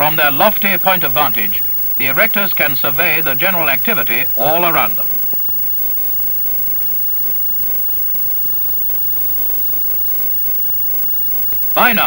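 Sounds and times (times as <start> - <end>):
man narrating: 0.0 - 5.1, 11.8 - 12.0
film soundtrack hiss: 0.0 - 12.0.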